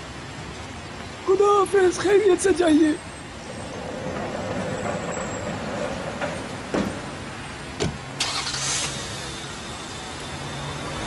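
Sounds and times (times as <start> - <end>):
car engine starting and idling: 7.2 - 11.0
car door shutting: 7.8 - 9.0.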